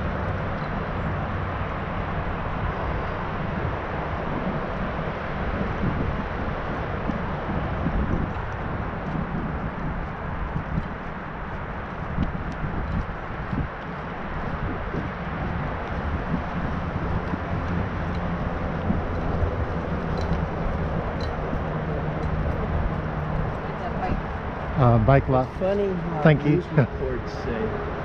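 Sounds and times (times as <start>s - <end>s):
tyres rolling on asphalt: 0.0s - 28.0s
wind on microphone: 0.0s - 28.0s.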